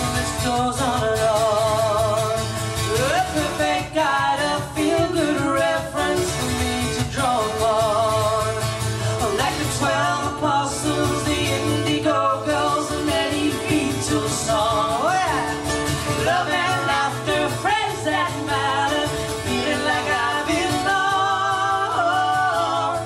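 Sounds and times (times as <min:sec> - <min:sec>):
acoustic guitars: 0:00.0 - 0:23.0
women singing: 0:00.0 - 0:23.0.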